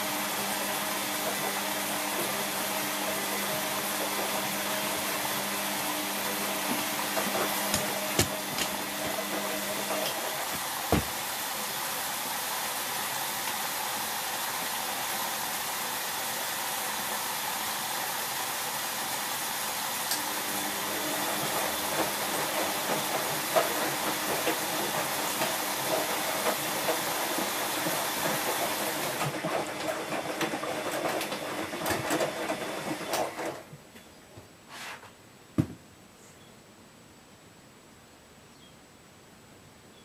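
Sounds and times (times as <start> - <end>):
washing machine drum hum: 0.0 - 11.6, 20.4 - 33.4
water hissing into washing machine: 0.0 - 33.6.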